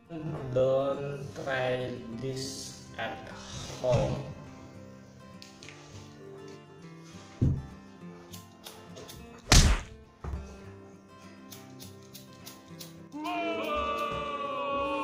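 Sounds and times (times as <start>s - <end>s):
thuds: 7.4s - 7.7s, 9.4s - 10.5s.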